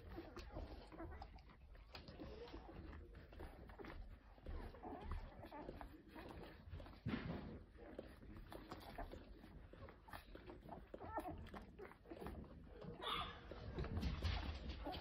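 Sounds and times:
puppies squeaking: 0.0 - 15.0
puppies suckling clicks: 0.0 - 15.0.

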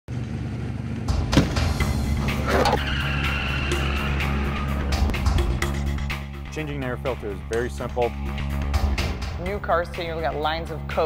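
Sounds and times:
car engine: 0.1 - 5.4
music: 1.0 - 11.0.

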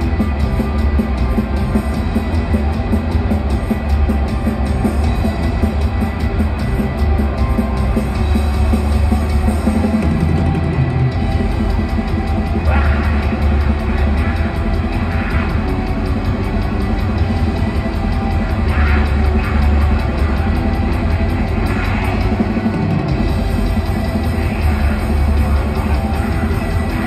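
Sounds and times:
rock band playing live: 0.0 - 27.0.

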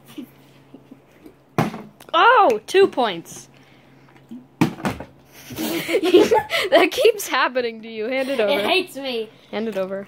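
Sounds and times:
plastic bottle knocking down: 1.6 - 1.9, 4.6 - 5.1
person laughing: 5.4 - 7.0.

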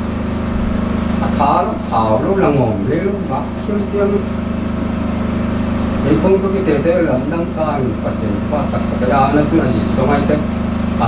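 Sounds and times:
low pulsing hum: 0.0 - 11.0
speech: 1.2 - 4.3, 6.0 - 10.5.

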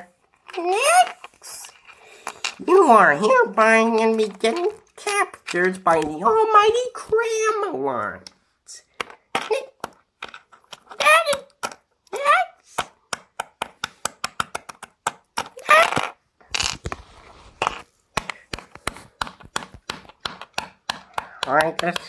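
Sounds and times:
child making sound effects: 0.0 - 1.7, 4.4 - 7.8, 9.4 - 9.8, 10.9 - 12.6, 15.5 - 16.2
plastic toys clicking on floor: 12.8 - 16.9, 17.6 - 22.0.

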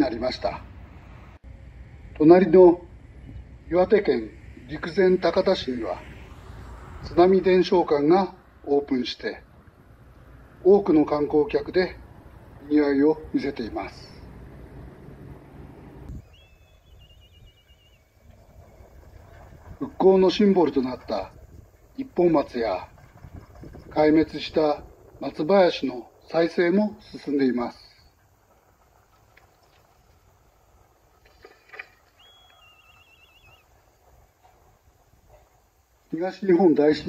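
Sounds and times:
faint low outdoor rumble: 0.0 - 37.0
bird whistling warbling trill: 16.1 - 18.8, 32.0 - 33.8.

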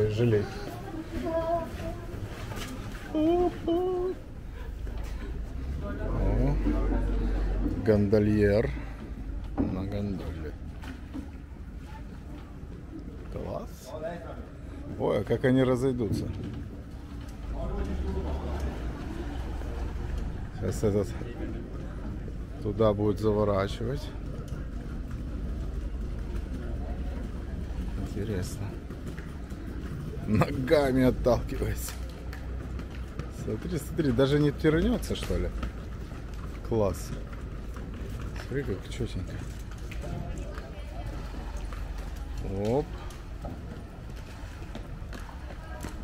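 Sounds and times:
faint distant voices: 0.0 - 46.0
low city rumble: 0.0 - 46.0.

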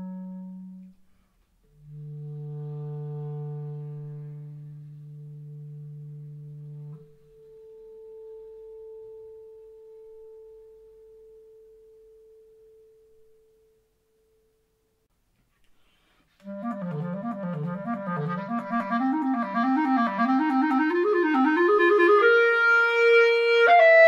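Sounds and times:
clarinet low note: 0.0 - 1.1, 1.7 - 13.9, 16.4 - 24.0.

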